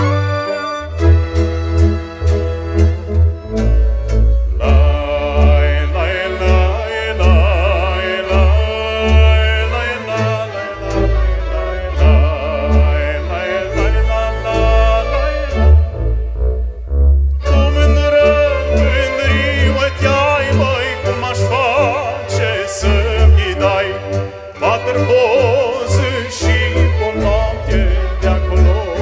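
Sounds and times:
folk band with violins and accordion: 0.0 - 29.0
man singing with vibrato: 4.5 - 16.0, 17.4 - 29.0
steady bass beat: 15.6 - 17.9.

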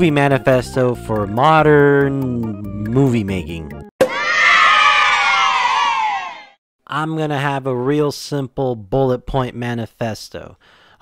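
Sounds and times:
children cheering and shouting: 4.0 - 6.6.

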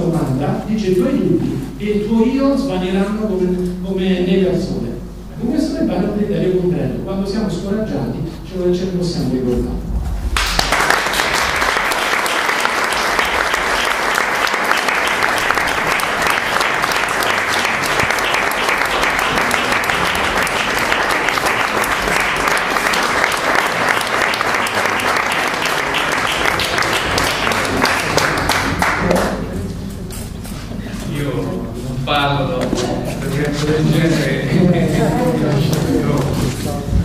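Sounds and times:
audience applauding: 10.3 - 29.6.

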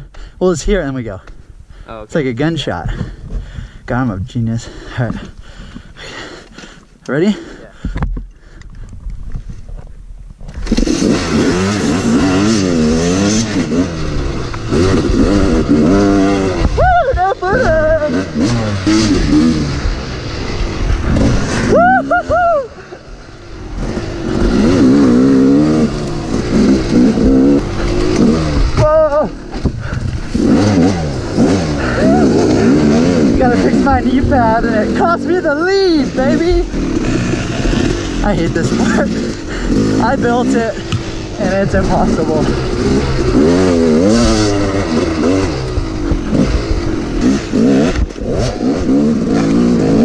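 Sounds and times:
dirt bike engines revving: 0.0 - 8.9, 10.5 - 50.0.

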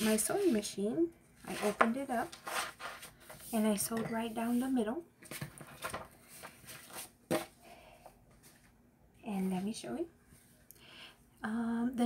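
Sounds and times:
paper rustling: 1.4 - 3.8, 4.4 - 7.5.

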